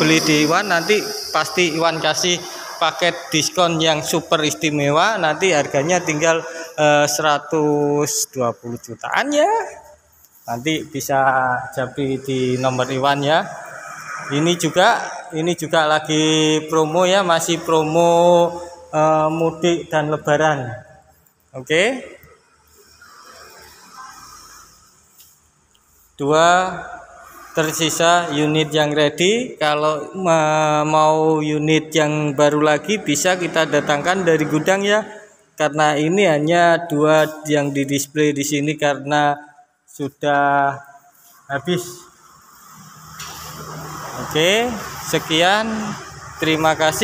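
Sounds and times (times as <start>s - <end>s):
road vehicle approaching: 0.0s - 37.8s, 41.1s - 47.0s.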